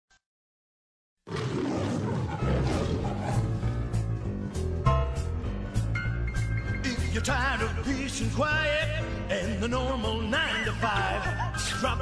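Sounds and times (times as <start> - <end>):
lion roaring: 1.3 - 3.8.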